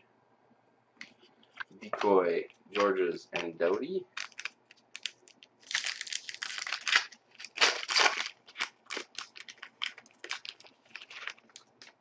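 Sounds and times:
wrapper crinkling and tearing: 0:04.1 - 0:12.0.

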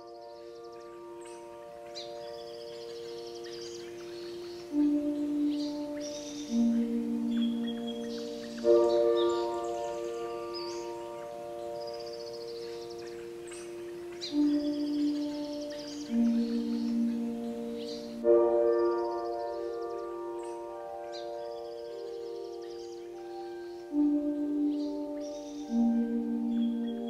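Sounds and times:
ambient music with held chords: 0:00.0 - 0:27.0
birds chirping and trilling: 0:00.0 - 0:27.0.

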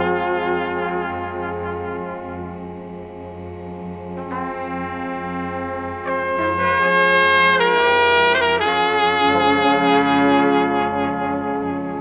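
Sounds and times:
brass band playing held chords: 0:00.0 - 0:12.0.

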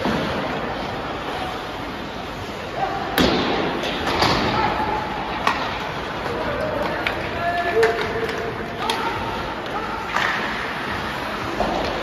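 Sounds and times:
hockey stick hitting puck: 0:05.3 - 0:05.9, 0:10.1 - 0:10.6.

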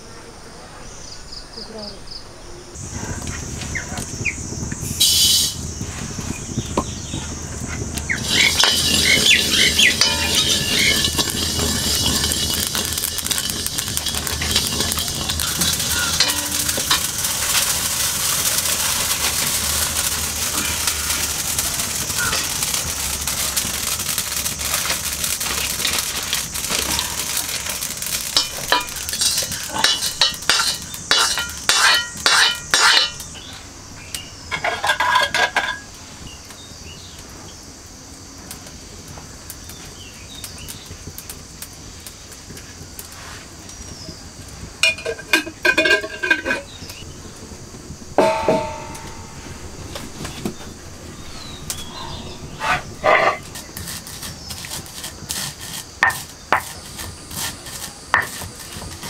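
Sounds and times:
seeds crackling and sizzling: 0:00.9 - 0:59.0
seeds pouring into wok: 0:02.8 - 0:35.9, 0:43.0 - 0:59.0
metal ladle scraping wok: 0:05.0 - 0:05.6, 0:08.0 - 0:24.0, 0:24.6 - 0:35.8, 0:44.8 - 0:59.0.

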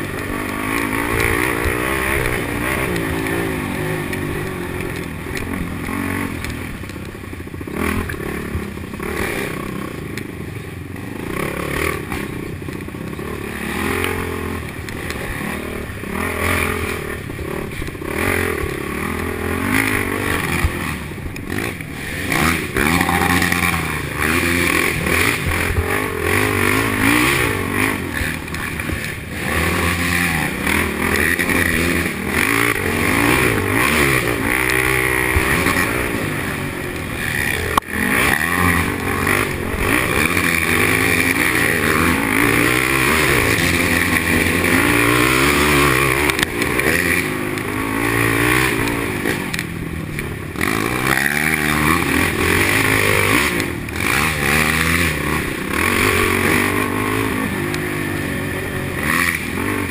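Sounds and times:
quad engine revving: 0:00.0 - 0:07.0, 0:07.6 - 0:59.9.

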